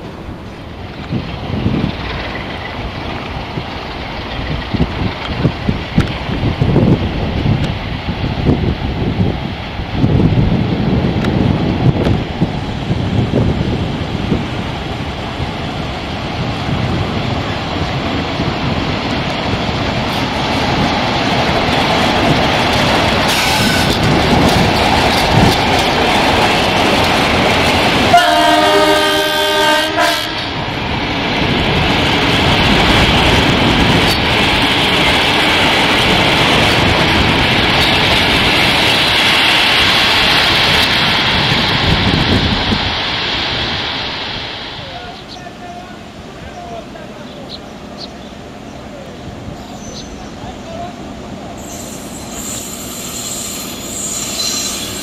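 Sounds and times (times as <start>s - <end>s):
wheels rolling on rails: 10.1s - 28.2s
multi-tone train horn: 28.1s - 30.6s.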